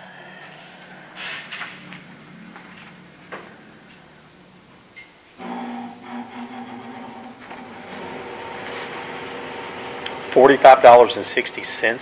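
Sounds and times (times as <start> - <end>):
machine humming: 5.4 - 11.4.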